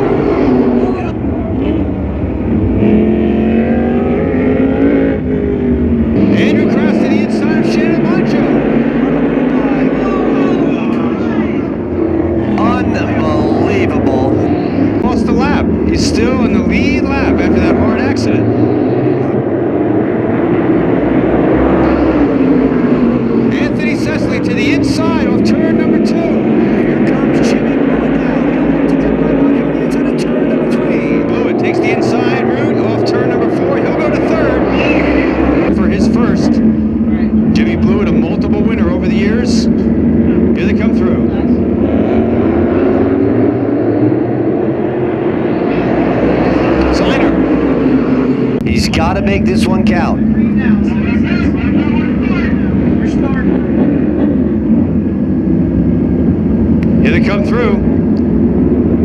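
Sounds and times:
race car engines racing: 0.0s - 59.0s.

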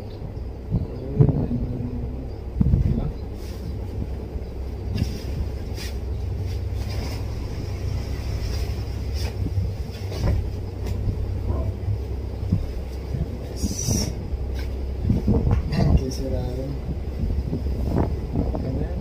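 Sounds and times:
low room rumble: 0.0s - 19.0s
cloth rustling: 4.9s - 11.2s
fabric swish: 5.0s - 7.4s, 8.2s - 11.0s.

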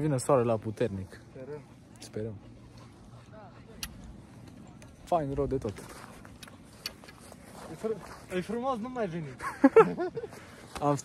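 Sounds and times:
faint voices: 0.9s - 9.3s.

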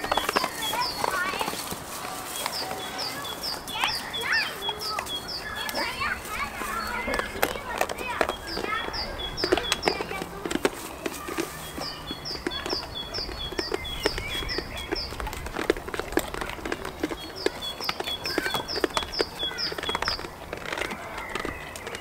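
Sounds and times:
goat hooves knocking on stone: 0.0s - 22.0s.

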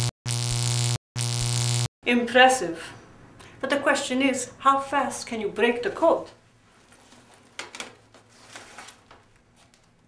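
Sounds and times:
harsh electric alarm buzz: 0.0s - 1.9s.

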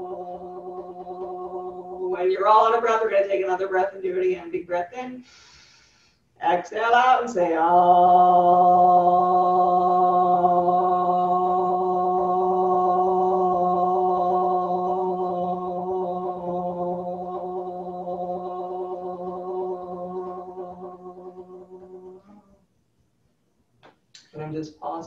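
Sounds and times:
woman holding long vocal tone: 0.0s - 2.8s, 6.8s - 22.6s.

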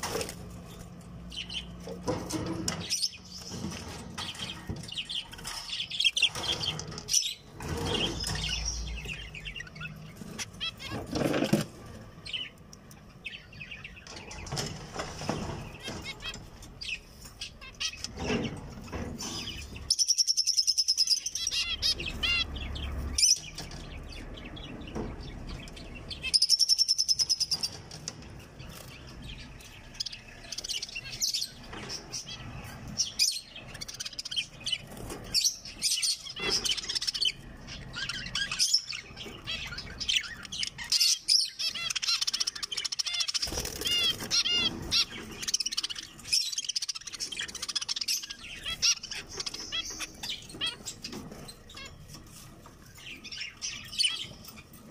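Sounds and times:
finches chirping: 15.5s - 54.9s
wings fluttering: 43.3s - 45.4s.

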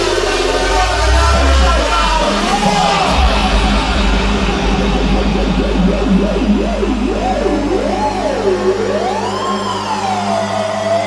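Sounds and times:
deep bass drone: 0.0s - 11.0s
edm mix on sound system: 0.0s - 11.0s
synth tone swooping in pitch: 0.3s - 11.0s.

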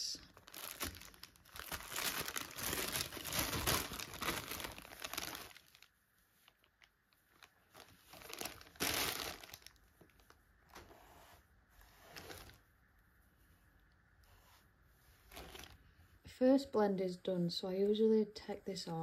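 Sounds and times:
plastic bag crinkling: 0.2s - 10.4s, 12.2s - 12.6s, 15.2s - 15.8s.

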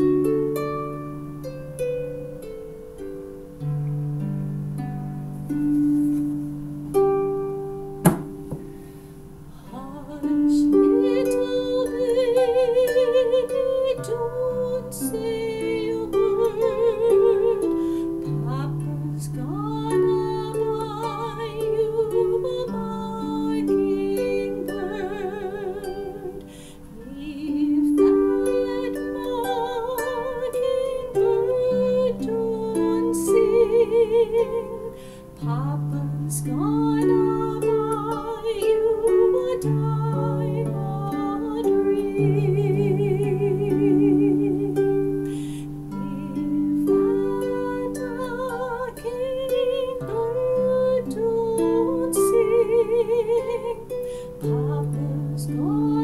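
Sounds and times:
harp plucked notes: 0.0s - 56.0s
woman singing lullaby: 9.5s - 56.0s.

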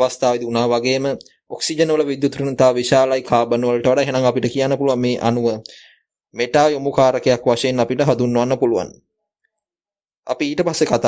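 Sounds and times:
person speaking: 0.0s - 5.8s.

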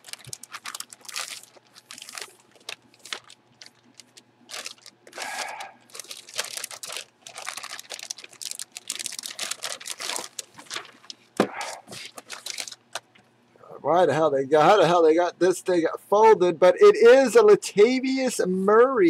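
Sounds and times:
plastic bag crinkling: 0.0s - 13.2s.

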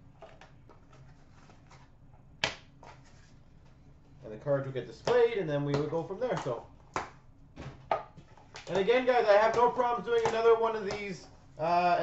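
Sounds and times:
card boxes handled by hand: 4.6s - 11.5s.

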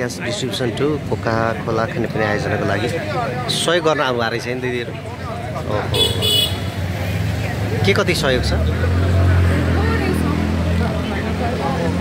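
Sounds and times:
street traffic: 0.0s - 12.0s
vehicle horn honking: 5.9s - 6.8s.

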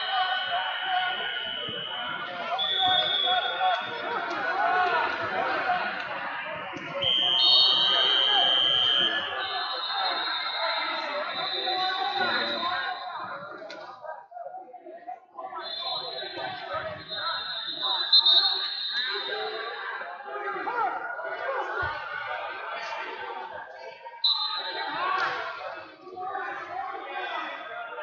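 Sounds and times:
crowd chatter in a large hall: 0.0s - 28.0s.

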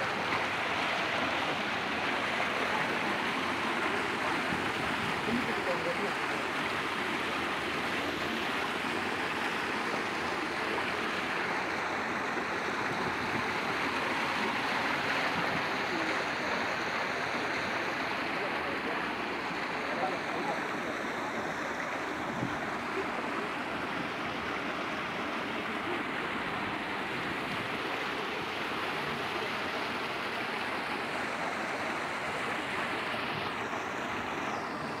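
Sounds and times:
waterfall pouring over rocks: 0.0s - 35.0s.

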